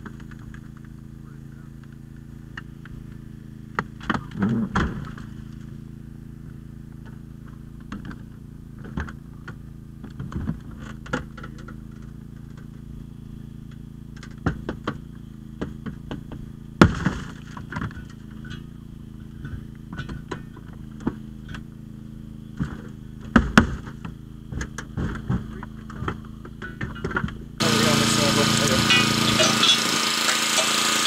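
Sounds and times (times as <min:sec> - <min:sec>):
hydraulic power unit humming: 0:00.0 - 0:31.0.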